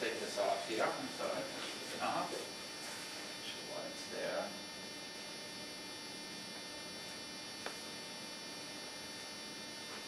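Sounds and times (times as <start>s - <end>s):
electrical hum with faint hiss: 0.0s - 10.0s.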